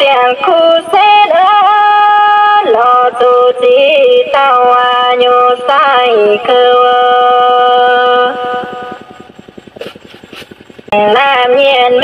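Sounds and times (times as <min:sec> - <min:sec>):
person folk singing: 0:00.0 - 0:09.1, 0:10.9 - 0:12.0
faint fast pulsing: 0:00.0 - 0:12.0.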